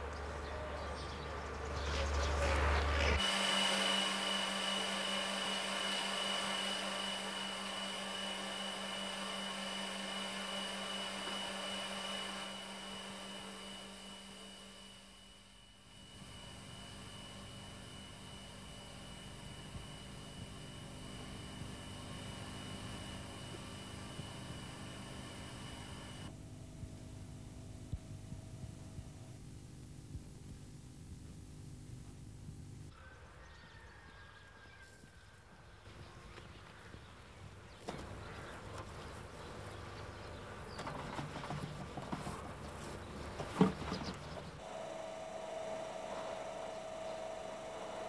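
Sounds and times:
high-pitched machine whine: 0:00.0 - 0:29.4, 0:43.6 - 0:48.0
machinery humming: 0:00.0 - 0:32.9, 0:41.8 - 0:48.0.

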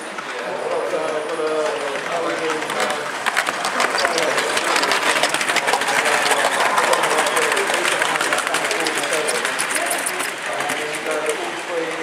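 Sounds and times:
model train rolling rush: 0:00.0 - 0:12.0
model train wheels clicking: 0:00.0 - 0:12.0
people talking: 0:00.0 - 0:12.0.

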